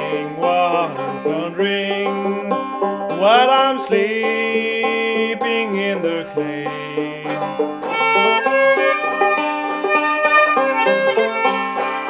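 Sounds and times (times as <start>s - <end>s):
banjo picking: 0.0s - 12.0s.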